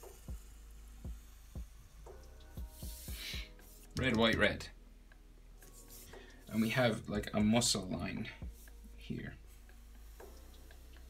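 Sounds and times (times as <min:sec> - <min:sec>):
felt-tip marker on paper: 0:00.0 - 0:04.4, 0:05.6 - 0:06.8, 0:08.4 - 0:11.0
faint background music: 0:00.0 - 0:11.0.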